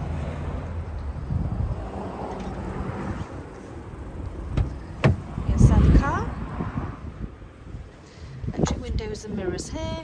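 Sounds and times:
wind rumbling on microphone: 0.1s - 10.0s.

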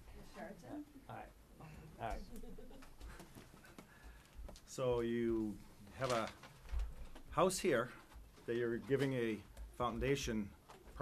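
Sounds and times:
man speaking: 1.0s - 2.4s, 4.7s - 6.4s, 7.3s - 11.0s.

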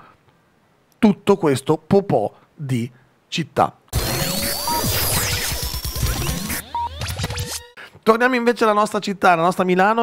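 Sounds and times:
electronic jingle music: 4.0s - 7.8s
turntable scratching: 4.0s - 7.8s.

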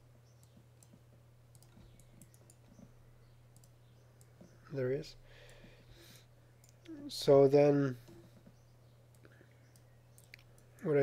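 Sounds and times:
low steady hum: 0.0s - 11.0s
faint computer mouse clicks: 0.4s - 2.9s, 3.5s - 4.5s, 6.6s - 6.9s, 9.1s - 10.9s.

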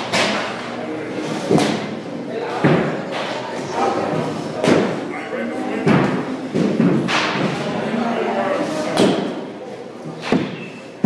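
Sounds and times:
baseball bat striking balls: 5.8s - 7.6s.

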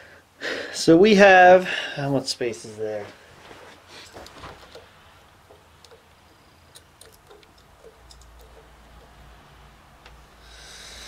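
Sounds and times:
metal clicks and taps: 4.2s - 9.2s.

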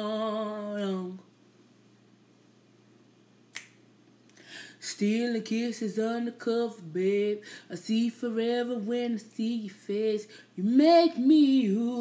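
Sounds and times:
woman singing unaccompanied: 0.0s - 1.3s, 4.8s - 12.0s.

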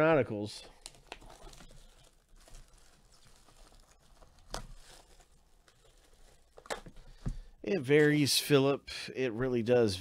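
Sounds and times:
shrink wrap crackling: 0.6s - 7.2s.

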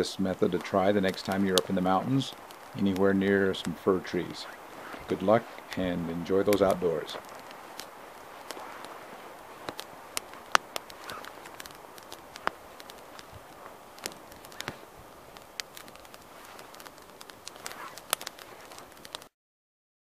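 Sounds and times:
low fire hiss: 0.0s - 19.3s
twig fire crackling and popping: 0.0s - 19.3s.

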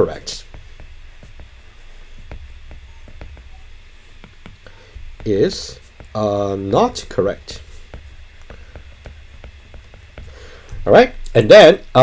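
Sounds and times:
stylus tapping on glass screen: 2.2s - 5.3s, 7.9s - 10.4s.

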